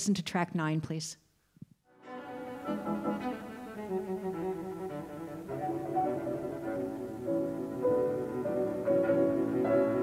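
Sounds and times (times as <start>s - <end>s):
string chamber music: 1.9s - 10.0s.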